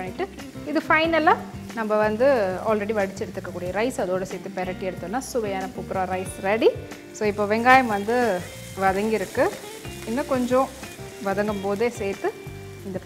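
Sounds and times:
food sizzling in a pan: 0:00.0 - 0:13.0
woman talking: 0:00.0 - 0:13.0.

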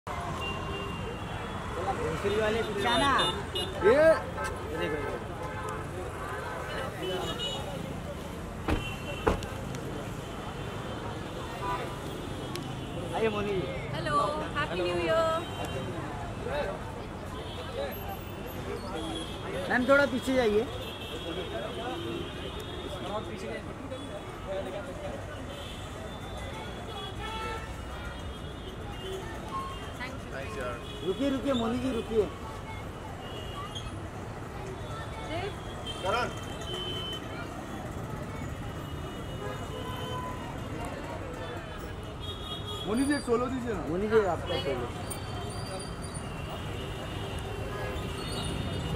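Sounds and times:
overlapping chatter: 0:00.0 - 0:48.9
traffic hum: 0:00.0 - 0:48.9.

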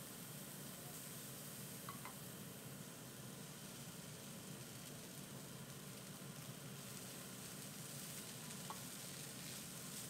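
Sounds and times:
noodles sizzling in a frying pan: 0:00.0 - 0:10.0.

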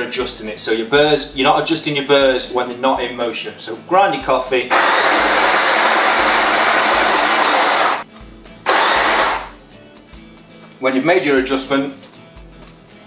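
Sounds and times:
electric coffee grinder grinding: 0:04.7 - 0:08.0, 0:08.7 - 0:09.5.

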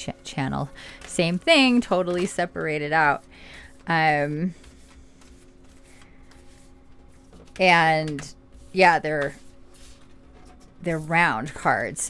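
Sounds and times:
cards being shuffled: 0:03.5 - 0:10.8.

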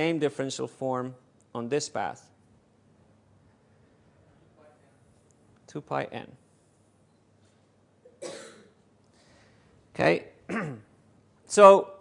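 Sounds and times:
man coughing: 0:08.1 - 0:08.8, 0:10.5 - 0:11.0.

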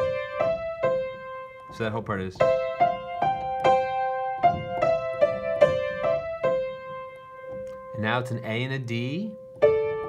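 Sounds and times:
slow piano melody: 0:00.0 - 0:10.0.

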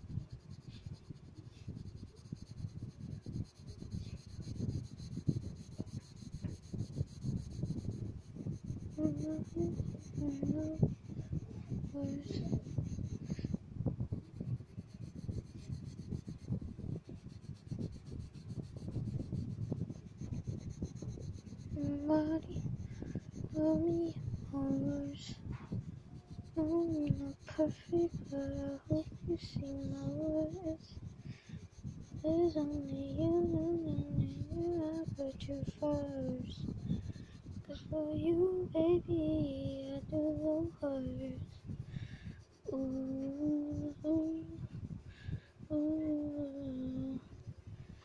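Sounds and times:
pencil shading on paper: 0:00.0 - 0:48.0
person singing slow melody: 0:42.7 - 0:44.6, 0:45.6 - 0:47.3.

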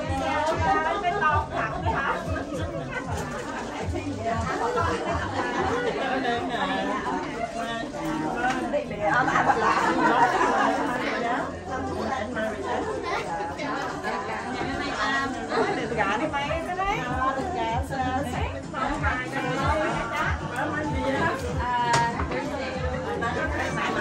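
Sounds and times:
overlapping chatter: 0:00.0 - 0:24.0.

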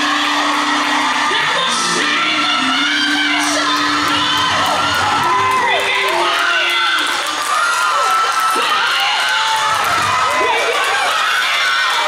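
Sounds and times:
gospel singing: 0:00.0 - 0:09.7
congregation whooping and cheering: 0:00.0 - 0:12.0.

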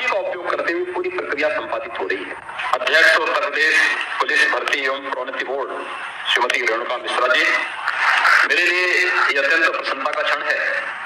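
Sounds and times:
man speaking into microphones: 0:00.0 - 0:07.8, 0:08.4 - 0:11.0.

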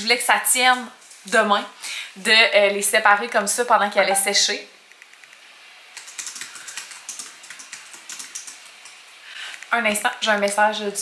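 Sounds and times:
typing on computer keyboard: 0:06.0 - 0:09.7.

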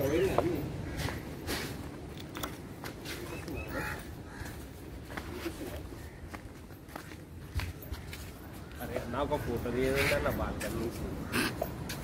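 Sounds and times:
footsteps on pavement: 0:00.3 - 0:12.0.

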